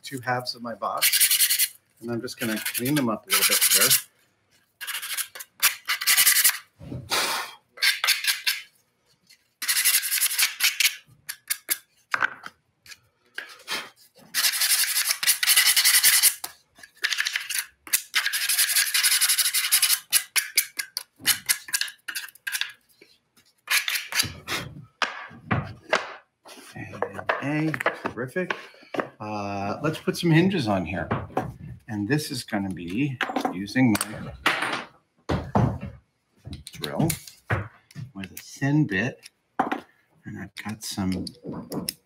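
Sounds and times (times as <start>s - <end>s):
sanding wood edges: 2.4s - 4.0s.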